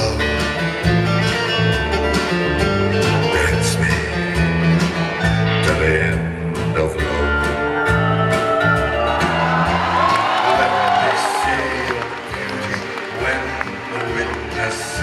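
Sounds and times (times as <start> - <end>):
bass line: 0.0 - 15.0.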